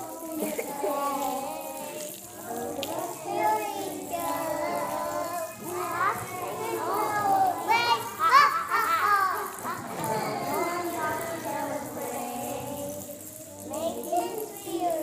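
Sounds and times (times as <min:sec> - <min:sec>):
children talking and calling: 0:00.0 - 0:15.0.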